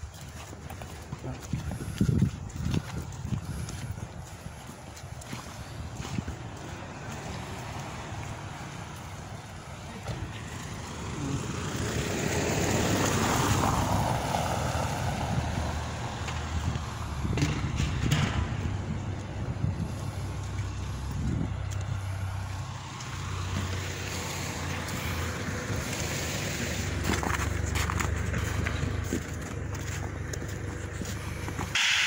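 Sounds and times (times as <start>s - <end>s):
low engine rumble: 0.0s - 32.0s
vehicle driving past: 5.4s - 32.0s
sharp knocks: 17.3s - 18.7s.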